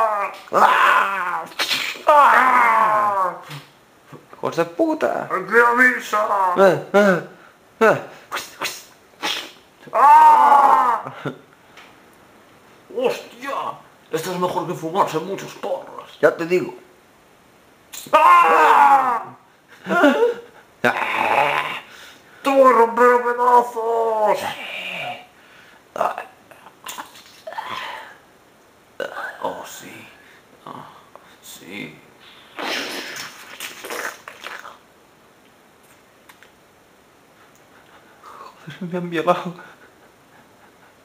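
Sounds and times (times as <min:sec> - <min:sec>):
person wailing cry: 0:00.0 - 0:03.6, 0:09.9 - 0:11.3, 0:18.1 - 0:21.9
person grunting: 0:00.0 - 0:03.7, 0:18.1 - 0:21.9.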